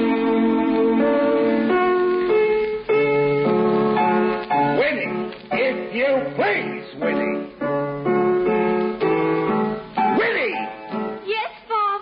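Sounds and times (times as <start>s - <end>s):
piano: 0.0s - 12.0s.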